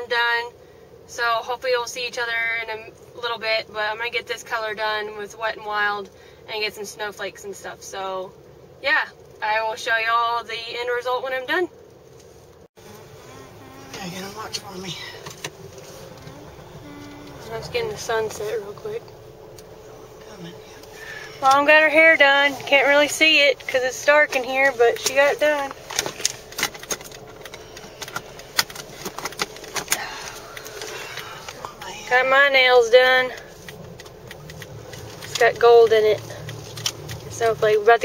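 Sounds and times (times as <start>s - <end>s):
faint low hum: 0.0s - 38.0s.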